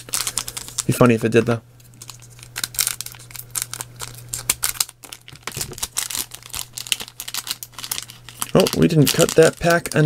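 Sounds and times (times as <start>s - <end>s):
foil wrapper crinkling: 0.0s - 10.0s
steady low hum: 0.0s - 10.0s.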